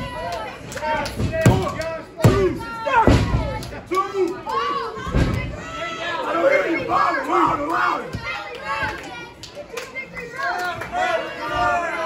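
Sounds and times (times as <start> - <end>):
thud: 1.2 - 3.6, 5.0 - 5.6
crowd of children shouting: 2.2 - 12.0.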